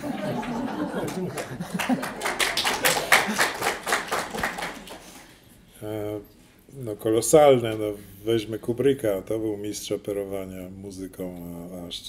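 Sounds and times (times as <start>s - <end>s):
audience applause: 0.0s - 5.4s.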